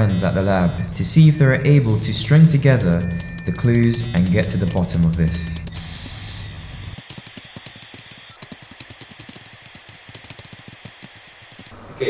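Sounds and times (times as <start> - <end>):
rapid irregular clicking: 0.0 - 11.8.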